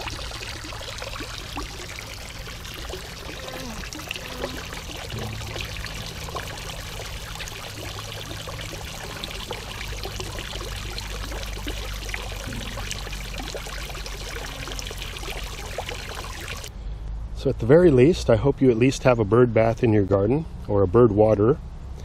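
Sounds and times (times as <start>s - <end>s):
water trickling and splashing: 0.0s - 16.7s.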